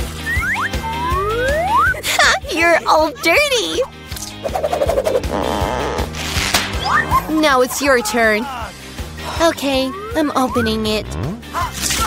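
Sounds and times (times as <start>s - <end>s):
background music: 0.0s - 12.0s
rising whistle-like glides: 0.2s - 2.0s.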